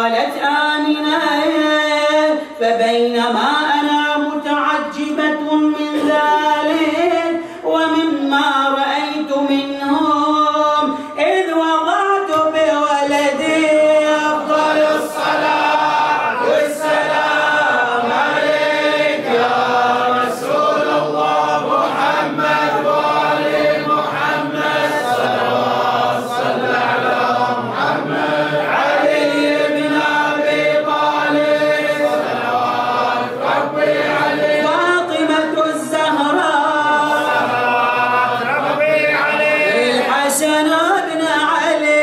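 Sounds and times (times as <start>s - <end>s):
men chanting in unison: 3.3s - 9.9s, 13.0s - 41.8s.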